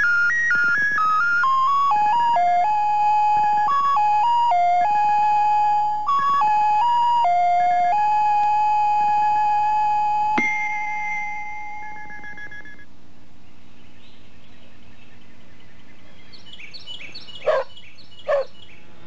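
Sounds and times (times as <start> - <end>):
electronic synthesizer melody: 0.0 - 12.9.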